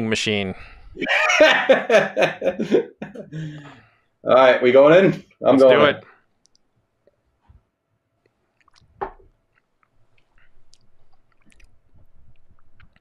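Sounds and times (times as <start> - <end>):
wet mouth clicks: 8.6 - 13.0
person sipping: 10.1 - 13.0.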